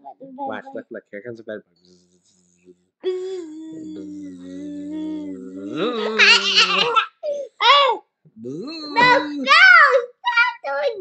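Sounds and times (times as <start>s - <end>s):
droning vocal bug imitation: 0.5s - 7.1s, 8.4s - 9.6s
young boy laughing: 5.7s - 7.5s, 8.9s - 9.6s.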